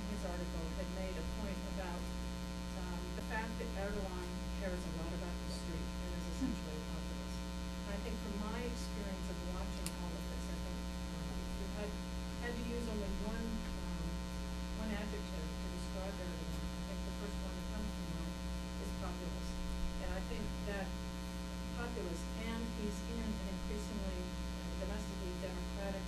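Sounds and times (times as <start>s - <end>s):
electrical mains hum: 0.0s - 26.0s.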